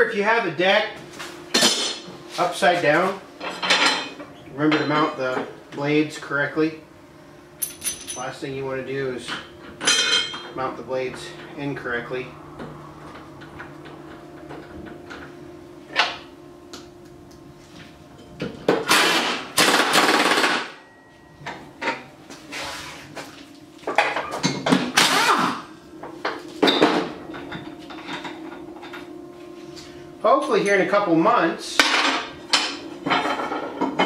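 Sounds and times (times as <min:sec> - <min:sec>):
impact wrench bursts: 0:18.9 - 0:20.8, 0:24.9 - 0:25.7.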